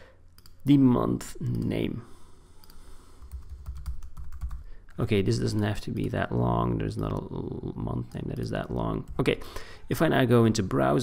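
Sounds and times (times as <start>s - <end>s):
keyboard typing: 2.6s - 4.7s.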